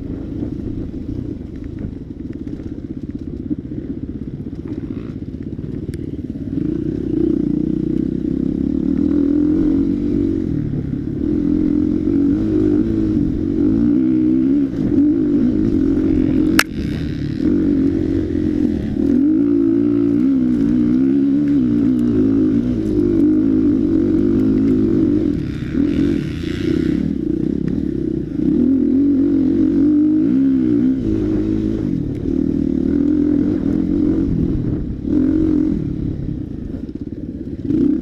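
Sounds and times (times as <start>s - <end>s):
dirt bike engine revving: 4.5s - 38.0s.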